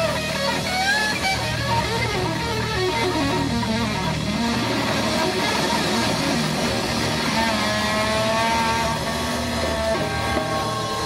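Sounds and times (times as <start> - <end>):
electric guitars sustained notes: 0.0 - 11.0.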